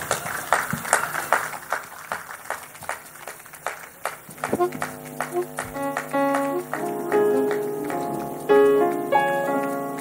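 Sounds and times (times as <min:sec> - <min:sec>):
sharp claps or knocks: 0:00.0 - 0:08.8.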